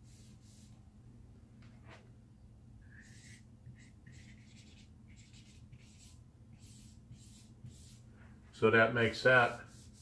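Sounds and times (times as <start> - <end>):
marker writing on whiteboard: 3.0 - 8.0, 9.4 - 10.0.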